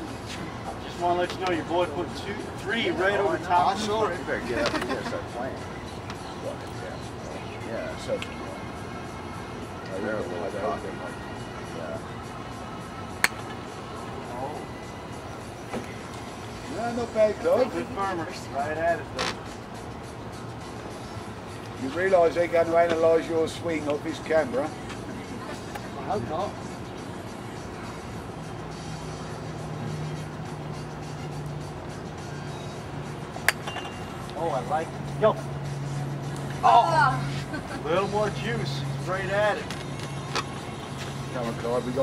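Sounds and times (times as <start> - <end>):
golf club striking ball: 13.2 - 13.6, 33.4 - 34.3.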